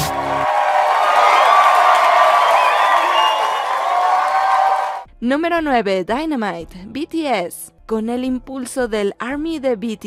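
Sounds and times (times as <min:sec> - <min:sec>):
crowd cheering and screaming: 0:00.0 - 0:05.0
high shrieks and whoops: 0:00.4 - 0:05.0.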